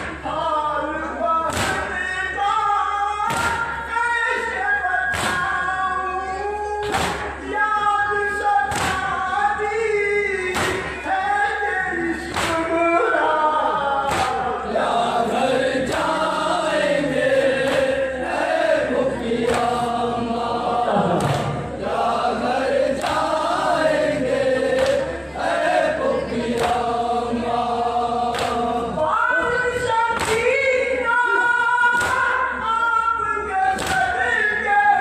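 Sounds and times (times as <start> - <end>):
man singing lament over loudspeakers: 0.0 - 26.4, 27.0 - 35.0
rhythmic chest-beating strikes: 1.5 - 2.0, 3.2 - 3.9, 5.1 - 5.6, 6.8 - 7.4, 10.5 - 11.1, 12.1 - 13.0, 14.0 - 30.9, 31.8 - 32.6
chorus of voices singing: 1.5 - 35.0.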